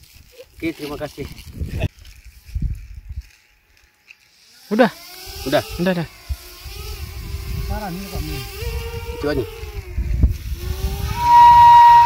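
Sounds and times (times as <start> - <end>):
wind rumbling on microphone: 0.0 - 3.4, 5.7 - 12.0
bamboo flute high note: 11.0 - 12.0.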